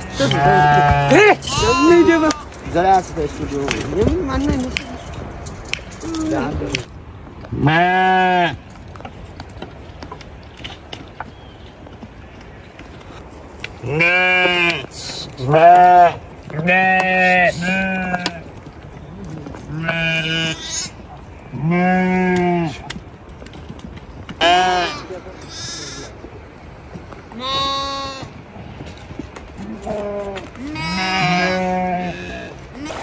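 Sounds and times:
sheep bleating: 0:00.0 - 0:02.5, 0:07.6 - 0:08.6, 0:13.8 - 0:18.5, 0:19.7 - 0:22.8, 0:24.4 - 0:26.1, 0:27.4 - 0:28.4, 0:29.6 - 0:33.0.

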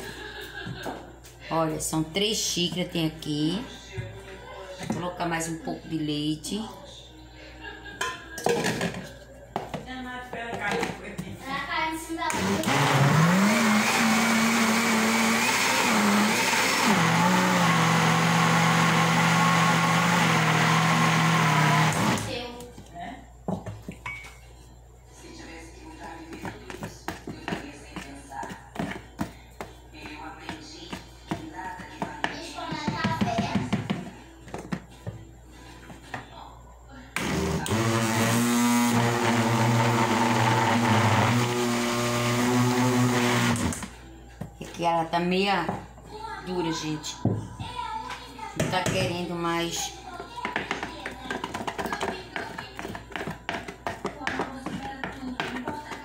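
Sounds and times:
electric blender motor running: 0:12.3 - 0:22.3, 0:37.2 - 0:43.9.

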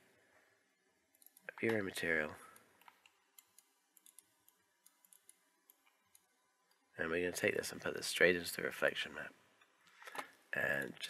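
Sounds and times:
computer mouse clicks: 0:02.5 - 0:06.8.

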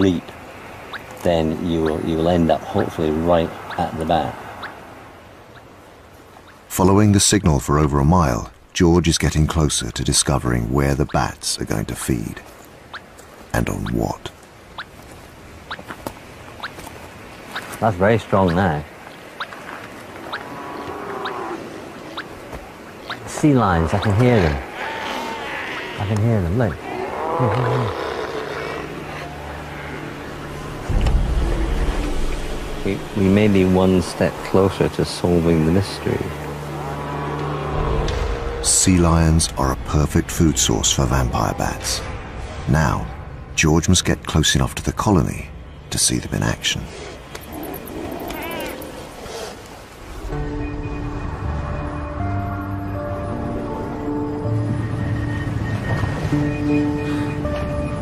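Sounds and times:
steady background hiss: 0:00.0 - 0:57.9
distant sea lion call: 0:18.4 - 0:31.7, 0:46.9 - 0:50.4.

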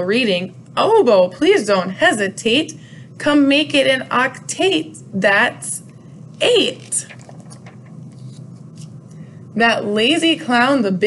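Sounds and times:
book page turning: 0:06.8 - 0:09.0.

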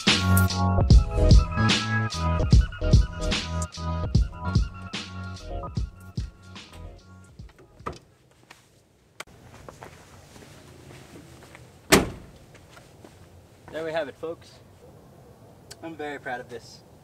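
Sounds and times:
background music: 0:00.0 - 0:08.0
loud sharp thunk: 0:11.9 - 0:12.3
man speaking: 0:15.8 - 0:16.9.

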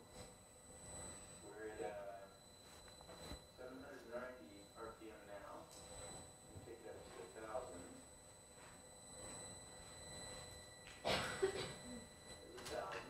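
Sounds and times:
thin high whine: 0:00.0 - 0:13.0.

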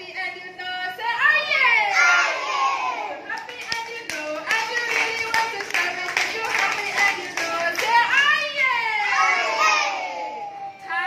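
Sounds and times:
children clapping: 0:03.3 - 0:08.2.

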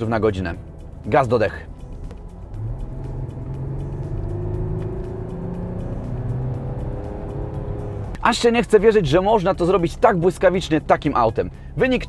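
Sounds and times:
diesel engine accelerating: 0:00.0 - 0:09.8.

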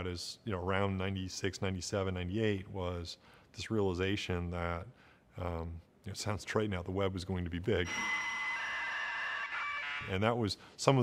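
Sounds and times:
dial-up modem screech: 0:07.8 - 0:10.2.

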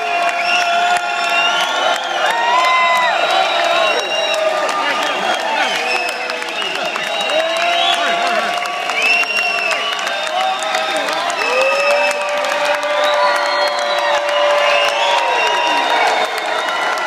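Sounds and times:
audience clapping: 0:00.0 - 0:17.0
crowd cheering and whooping: 0:00.0 - 0:17.0.

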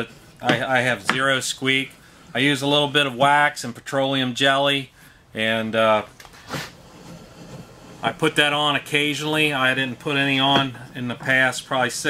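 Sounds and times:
wood rubbing on workbench: 0:00.0 - 0:02.4, 0:06.3 - 0:11.9
wood scraping: 0:00.0 - 0:03.1, 0:05.4 - 0:12.0.

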